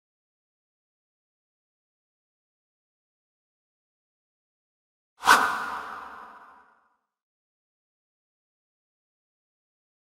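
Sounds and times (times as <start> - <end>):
whoosh: 5.2 - 6.8.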